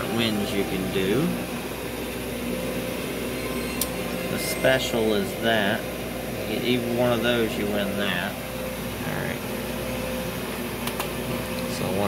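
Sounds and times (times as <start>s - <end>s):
machinery hum: 0.0s - 12.0s.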